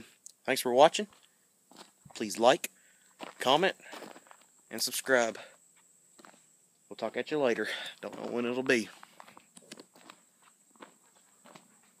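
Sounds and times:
footsteps on gravel: 0:01.1 - 0:05.5, 0:06.2 - 0:06.4, 0:07.0 - 0:12.0.

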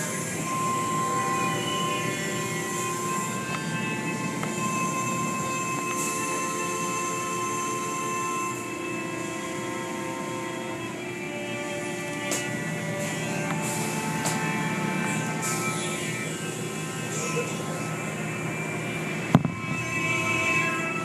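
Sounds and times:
machine whine: 0:00.0 - 0:21.0.

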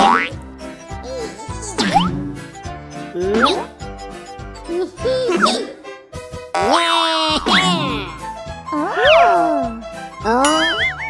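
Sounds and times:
children's background music: 0:00.0 - 0:11.0
cartoon voices exclaiming: 0:06.6 - 0:08.1, 0:08.8 - 0:10.8.

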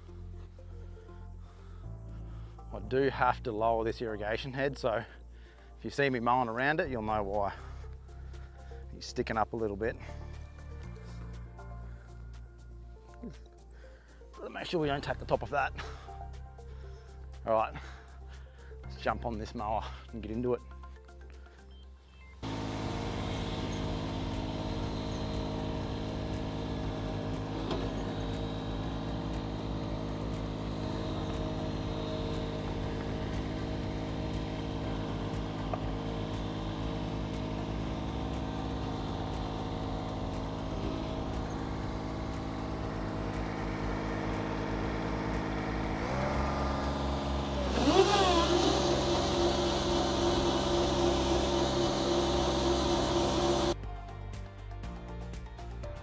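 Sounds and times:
mower engine running: 0:06.4 - 0:12.1, 0:14.5 - 0:16.1, 0:22.4 - 0:53.8.

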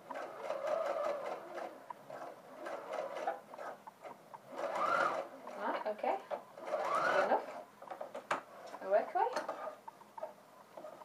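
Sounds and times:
electric sewing machine sewing: 0:00.0 - 0:07.6.

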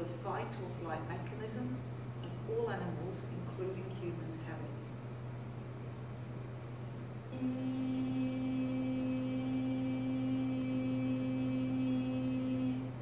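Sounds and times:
low steady hum: 0:00.0 - 0:13.0
woman singing long note: 0:07.3 - 0:13.0.

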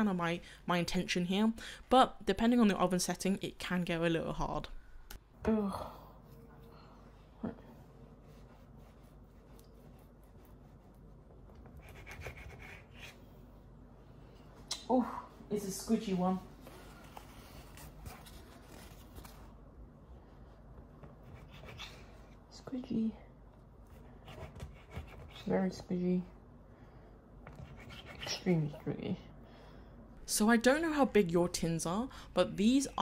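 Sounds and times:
knife scraping: 0:11.6 - 0:13.2, 0:21.2 - 0:22.2.

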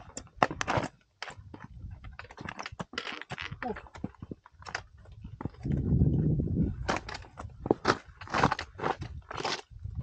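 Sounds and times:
boots striking rock and snow: 0:06.8 - 0:10.0.

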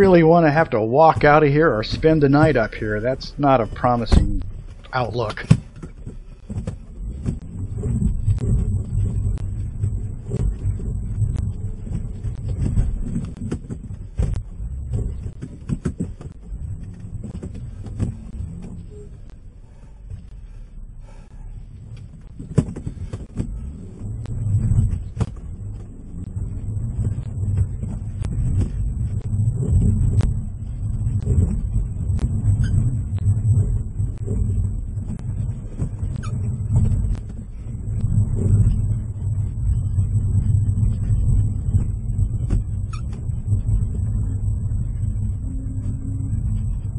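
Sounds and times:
car engine rumbling under load: 0:00.0 - 0:46.9.

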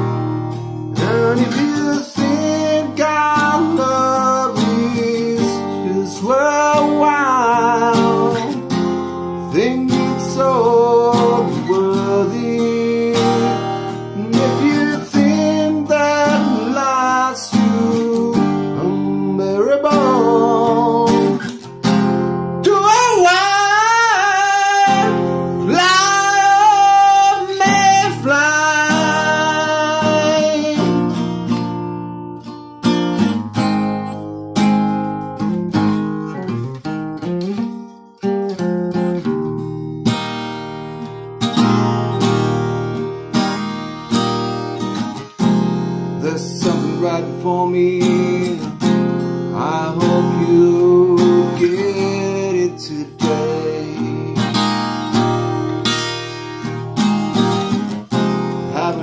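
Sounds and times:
acoustic guitar strumming: 0:00.0 - 0:59.0
man singing: 0:00.9 - 0:31.8, 0:46.1 - 0:55.4, 0:57.9 - 0:59.0.

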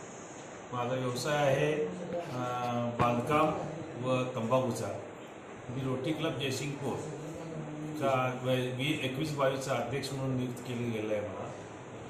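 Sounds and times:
steady low hum: 0:00.0 - 0:12.0
man speaking: 0:05.7 - 0:07.3, 0:08.0 - 0:11.7.

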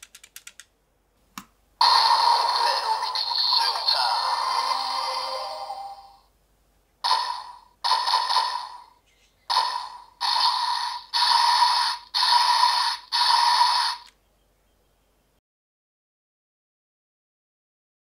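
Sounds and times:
toy gun electronic blaster bursts: 0:01.8 - 0:05.4, 0:07.0 - 0:14.1.

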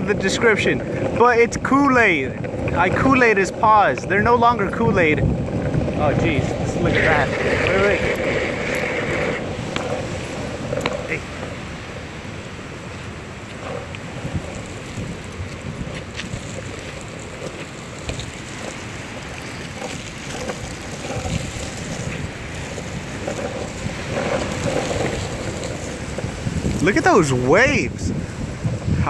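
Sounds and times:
ocean surf breaking: 0:00.0 - 0:29.0
wind buffeting microphone: 0:00.0 - 0:29.0.

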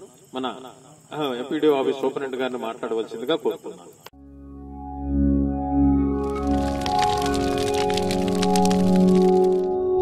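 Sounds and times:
sustained synth music: 0:04.2 - 0:10.0
dense crackling sound effect: 0:06.1 - 0:10.0.

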